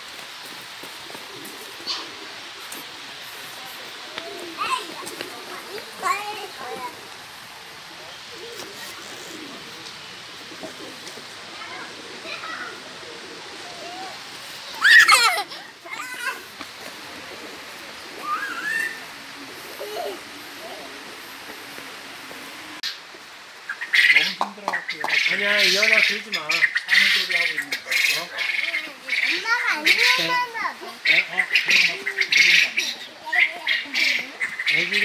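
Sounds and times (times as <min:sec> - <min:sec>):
pigeons cooing: 0:00.0 - 0:35.0
steady background hiss: 0:00.0 - 0:35.0
poultry calling: 0:23.7 - 0:35.0.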